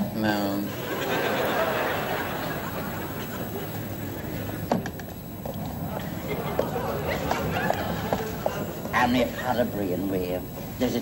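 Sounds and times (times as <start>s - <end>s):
footsteps on pavement: 6.5s - 9.0s.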